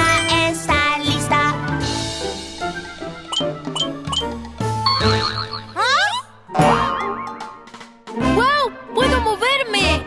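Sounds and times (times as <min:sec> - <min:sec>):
children's background music: 0:00.0 - 0:10.0
springy boing: 0:04.9 - 0:07.4.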